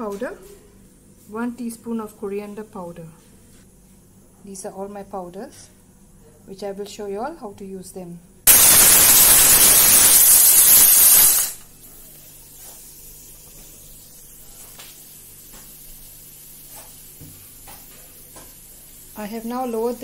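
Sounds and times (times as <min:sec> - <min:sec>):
pressure cooker steam hiss: 0:08.5 - 0:20.0.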